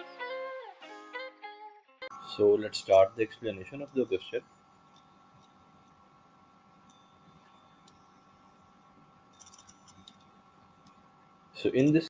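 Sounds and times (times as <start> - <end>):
faint steady hum: 2.0 - 12.0.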